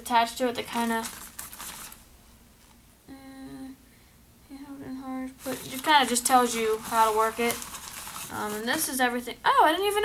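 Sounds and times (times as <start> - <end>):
woman speaking: 0.0 - 1.1, 4.6 - 7.6, 8.3 - 10.0
rustle of things handled: 0.6 - 2.0, 5.4 - 9.2
woman humming: 3.1 - 3.8, 4.4 - 5.4.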